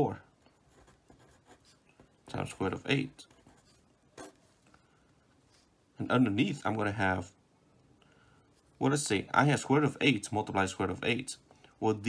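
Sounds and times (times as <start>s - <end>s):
pencil scratching on paper: 0.5s - 4.5s.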